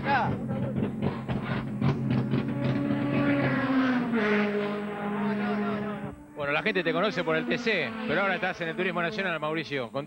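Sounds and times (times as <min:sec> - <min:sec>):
race car engine running: 0:00.0 - 0:09.4.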